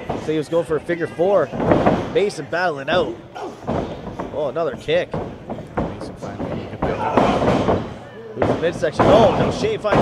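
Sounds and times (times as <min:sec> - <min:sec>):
crowd voices and chatter: 0:00.0 - 0:10.0
thuds in wrestling ring: 0:01.5 - 0:02.2, 0:03.0 - 0:10.0.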